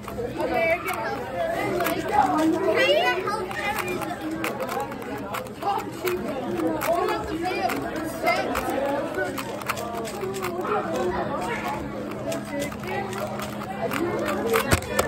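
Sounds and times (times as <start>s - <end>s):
background chatter: 0.0s - 15.0s
speed cube clicking: 0.0s - 15.0s.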